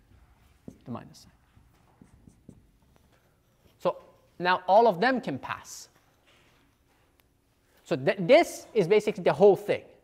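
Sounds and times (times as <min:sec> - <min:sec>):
marker writing on whiteboard: 0:00.0 - 0:04.4
man speaking: 0:00.7 - 0:01.4, 0:03.8 - 0:06.0, 0:07.8 - 0:10.0.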